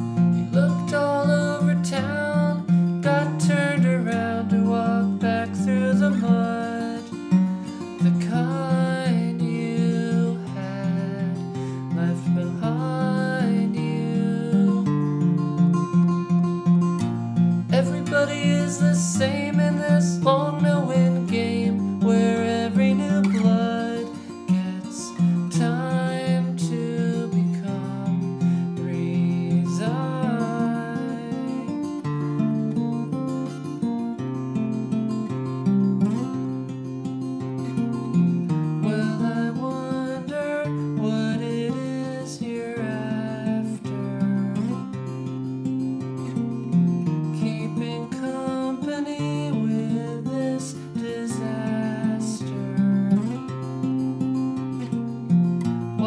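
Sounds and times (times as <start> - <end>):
acoustic guitar picking: 0.0 - 56.0.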